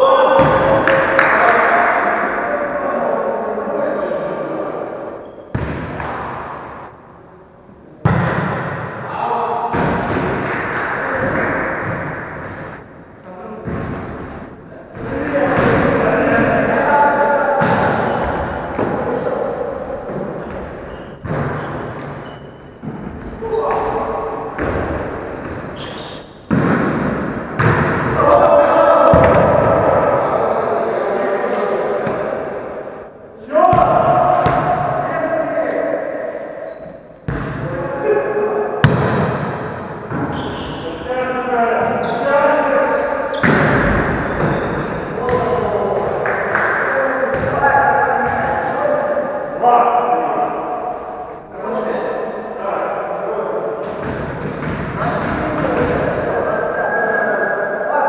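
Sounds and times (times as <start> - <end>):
echoing gym hall noise: 0.0 - 58.0
players' voices: 0.0 - 58.0
volleyball hits: 0.4 - 2.0, 5.5 - 6.7, 8.0 - 8.9, 9.7 - 12.8, 13.6 - 16.6, 17.6 - 19.2, 20.0 - 30.0, 33.6 - 35.0, 37.2 - 37.7, 38.8 - 40.8, 43.3 - 48.8, 53.8 - 56.2
volleyball hit thud: 26.5 - 28.0, 38.8 - 40.3.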